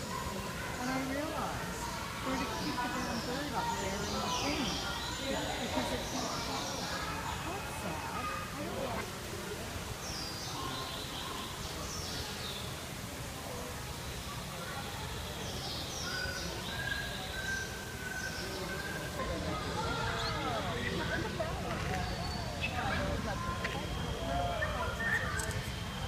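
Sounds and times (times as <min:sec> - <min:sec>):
low background noise: 0:00.0 - 0:26.0
murmur of voices: 0:00.0 - 0:26.0
small birds chirping: 0:00.0 - 0:26.0
whistled bird notes: 0:15.4 - 0:19.2, 0:22.0 - 0:26.0.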